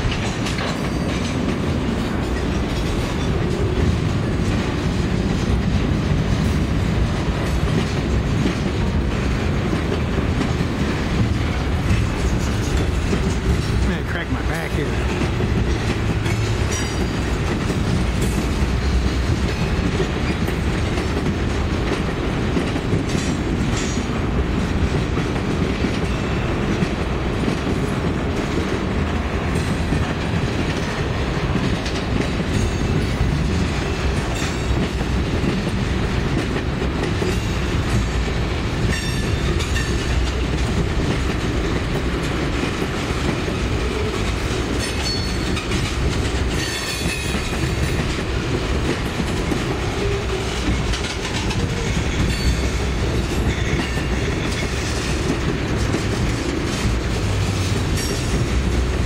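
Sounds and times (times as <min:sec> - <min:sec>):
train wheels rumbling and clicking: 0:00.0 - 0:59.0.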